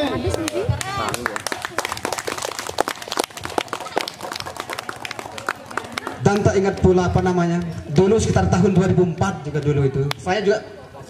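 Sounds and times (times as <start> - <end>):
crowd voices: 0.0 - 11.0
audience clapping: 0.2 - 6.8.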